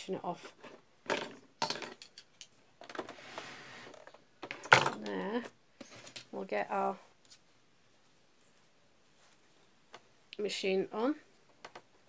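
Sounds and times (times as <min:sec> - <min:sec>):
sewing machine sliding on tabletop: 0:03.1 - 0:04.0
fabric rustling: 0:06.9 - 0:10.3.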